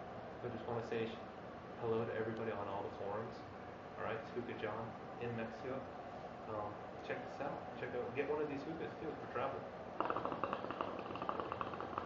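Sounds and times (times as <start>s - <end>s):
hookah water gurgling: 9.2s - 12.0s.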